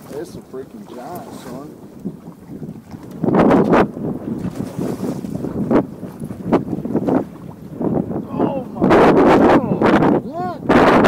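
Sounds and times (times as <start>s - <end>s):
fish splashing: 0.0s - 7.6s
water slapping against boat hull: 0.0s - 11.0s
wind buffeting microphone: 0.0s - 11.0s.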